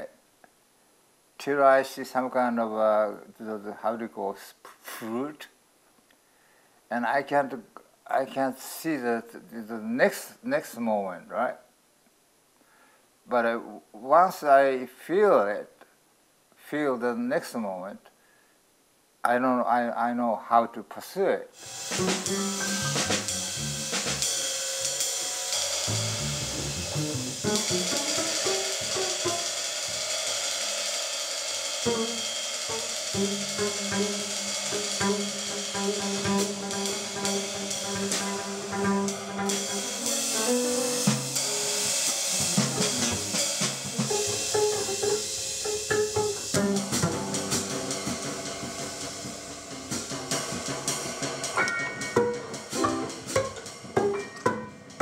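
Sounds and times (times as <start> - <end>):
jazz piano: 21.6 - 30.1, 31.9 - 55.0
cymbal and drum strokes: 21.6 - 55.0
pizzicato double bass: 21.9 - 24.2, 25.9 - 29.4, 33.2 - 41.3, 42.3 - 45.3, 52.2 - 53.6.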